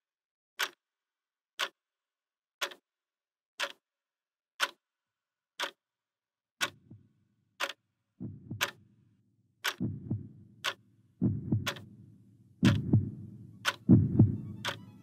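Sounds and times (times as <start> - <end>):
clock ticking: 0.6 - 0.8, 2.6 - 2.8, 3.6 - 3.8, 4.6 - 4.8, 5.6 - 5.8, 6.6 - 6.9, 7.6 - 8.8, 9.6 - 11.9, 12.6 - 15.0.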